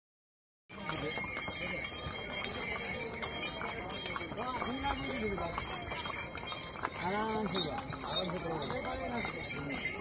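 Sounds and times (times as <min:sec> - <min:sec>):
harness bells jingling: 0:00.7 - 0:10.0
hooves on stone path: 0:00.7 - 0:10.0.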